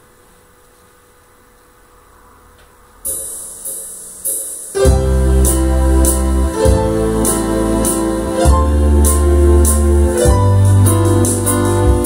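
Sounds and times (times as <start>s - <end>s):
electrical hum and hiss: 0.0s - 12.0s
keyboard cymbal-like hits: 3.0s - 12.0s.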